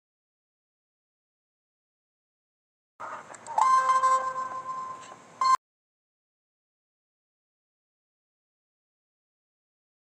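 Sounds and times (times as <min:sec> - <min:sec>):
loud high beep tone: 0:03.6 - 0:05.6.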